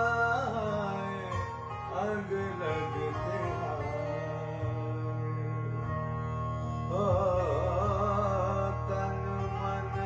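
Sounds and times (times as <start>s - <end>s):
man singing with ornaments: 0.0s - 6.1s, 6.8s - 10.0s
strummed acoustic guitar: 0.0s - 10.0s.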